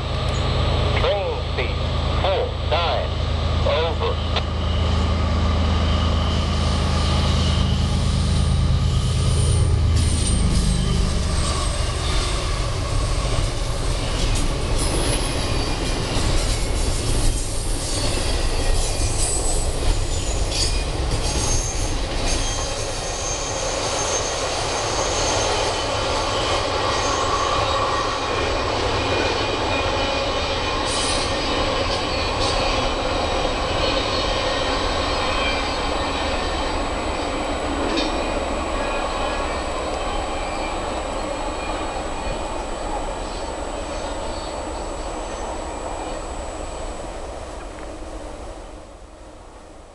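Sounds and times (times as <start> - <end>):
heavy low rumble: 0.0 - 15.3
train wheels rushing on rail: 0.0 - 49.9
train clanks: 7.1 - 46.1
wheel squeal: 17.9 - 25.8.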